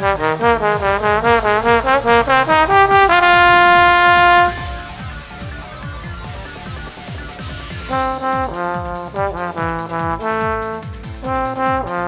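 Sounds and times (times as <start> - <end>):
trombone long note: 0.0 - 5.5, 7.9 - 12.0
backing track with drum beat: 0.0 - 12.0.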